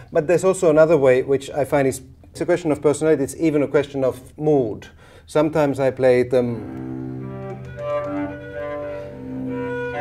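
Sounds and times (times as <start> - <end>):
bowed cello: 6.4 - 10.0.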